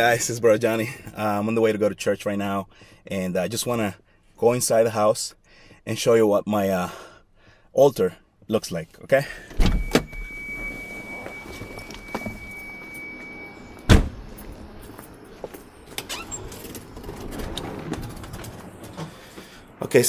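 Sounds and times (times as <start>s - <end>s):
car door warning tone: 9.5s - 14.8s
car door slamming shut: 13.8s - 14.3s.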